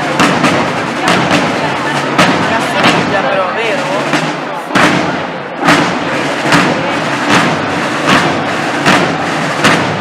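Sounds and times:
ceremonial drums beating: 0:00.0 - 0:10.0
crowd murmur: 0:00.0 - 0:10.0.

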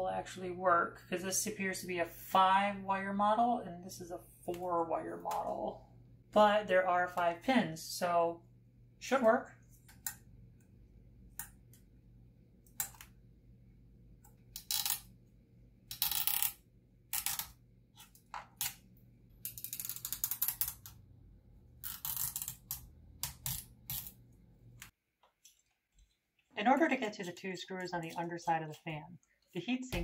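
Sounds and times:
faint steady hum: 0:00.0 - 0:27.1.

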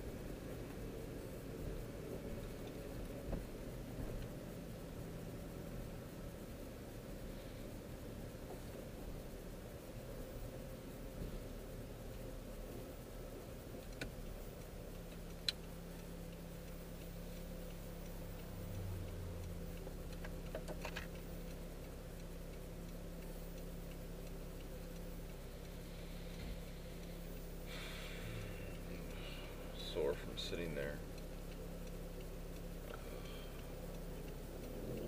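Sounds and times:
car engine idling: 0:00.0 - 0:35.0
turn signal ticking: 0:00.0 - 0:35.0.

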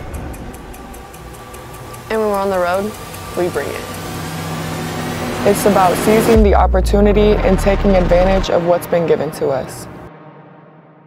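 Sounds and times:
quick even ticking: 0:00.0 - 0:08.4
steady low drone: 0:00.0 - 0:09.2.

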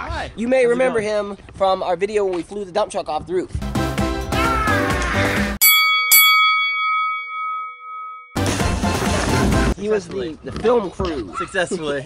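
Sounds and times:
bell-like ding: 0:05.6 - 0:08.5.

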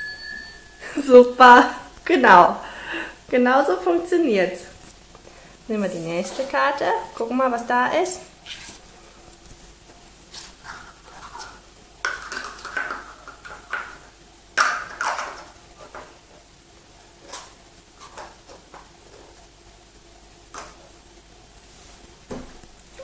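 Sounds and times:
plastic cups clacking on table: 0:11.3 - 0:14.0, 0:14.6 - 0:16.1.

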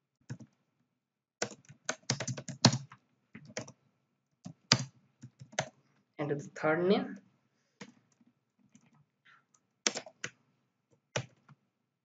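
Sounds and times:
keyboard typing: 0:00.2 - 0:00.6, 0:01.4 - 0:03.8, 0:04.4 - 0:05.8, 0:07.8 - 0:11.6.

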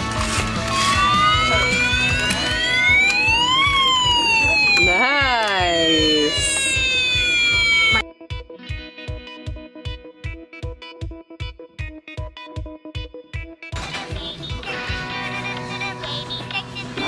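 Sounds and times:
background music with steady beat: 0:00.0 - 0:17.0
toy electronic siren wailing: 0:00.7 - 0:08.0.

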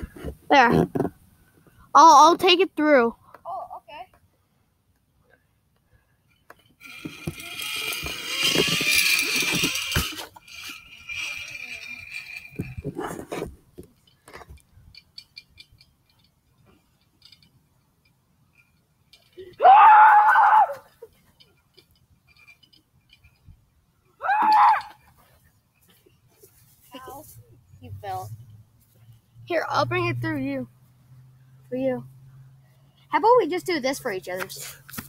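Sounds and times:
zipline trolley whirring on cable: 0:06.6 - 0:13.4, 0:18.5 - 0:23.5
person shouting: 0:24.2 - 0:25.0.

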